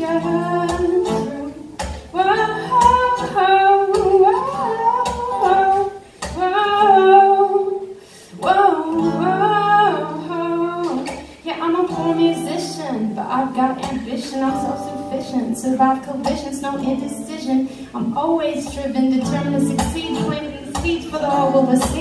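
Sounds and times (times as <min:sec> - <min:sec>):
acoustic guitar playing: 0:00.0 - 0:22.0
person singing: 0:02.2 - 0:07.8, 0:08.4 - 0:22.0.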